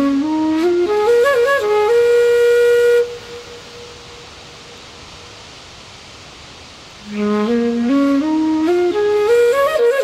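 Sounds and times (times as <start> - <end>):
flute-like wind instrument: 0.0 - 4.3, 7.0 - 10.0
steady rushing hiss: 0.0 - 10.0.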